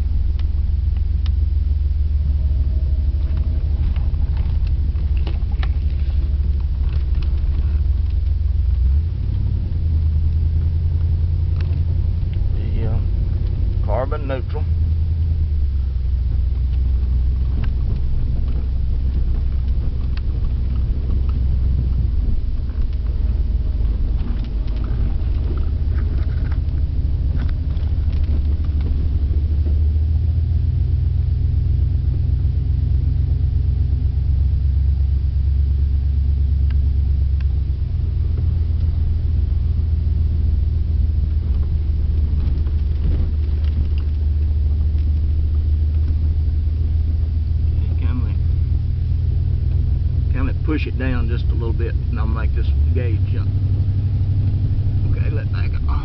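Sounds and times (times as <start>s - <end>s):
pickup engine rumbling: 0.0s - 56.0s
road noise: 0.0s - 56.0s.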